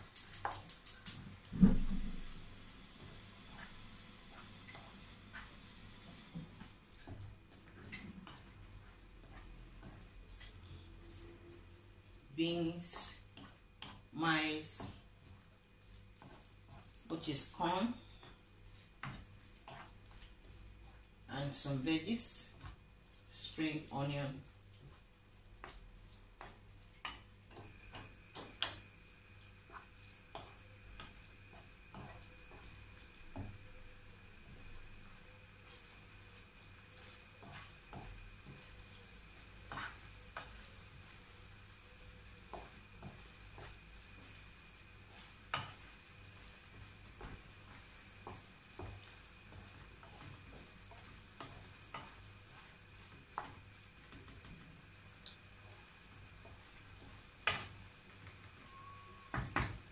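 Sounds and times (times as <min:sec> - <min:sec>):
faint sizzle: 0:00.0 - 0:59.9
wooden spoon stirring food: 0:00.0 - 0:59.9.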